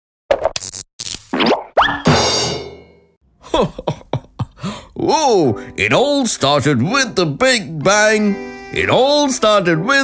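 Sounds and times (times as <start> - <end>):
cartoon pops: 1.3 - 2.2.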